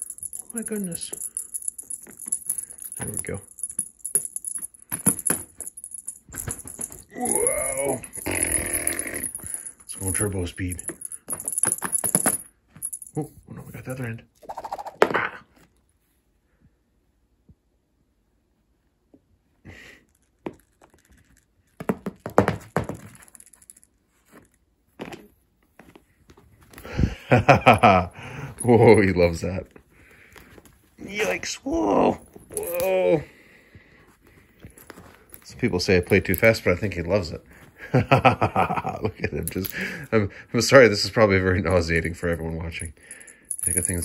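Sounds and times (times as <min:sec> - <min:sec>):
cat toy jangling and rattling: 0:00.0 - 0:07.1, 0:07.9 - 0:13.2, 0:43.2 - 0:44.0.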